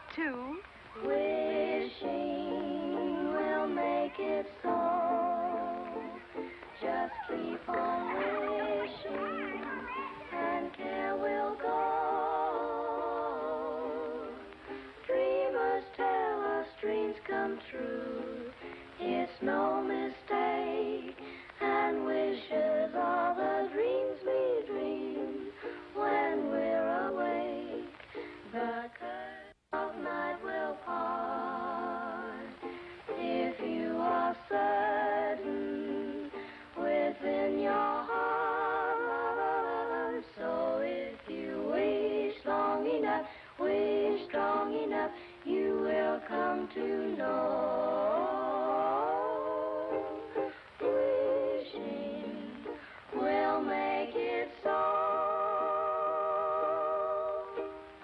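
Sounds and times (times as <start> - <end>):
children singing together: 0.9 - 58.0.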